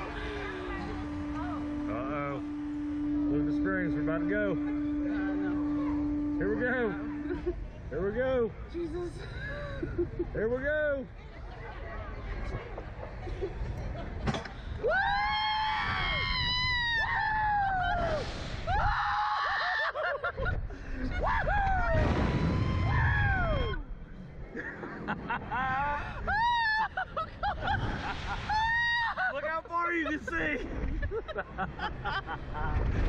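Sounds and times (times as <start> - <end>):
people screaming: 14.8 - 20.3, 21.0 - 23.9, 25.5 - 29.4
wind rushing on microphone: 32.4 - 33.0.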